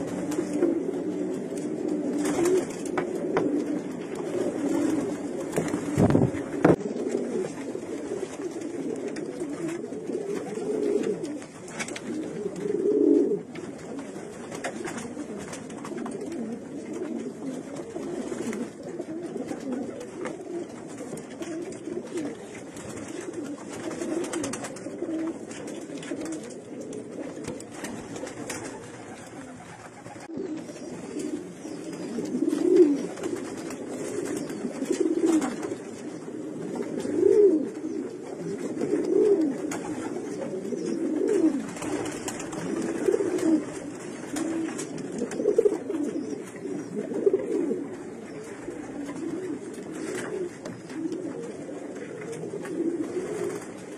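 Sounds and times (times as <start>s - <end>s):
pigeon cooing: 0.0s - 53.9s.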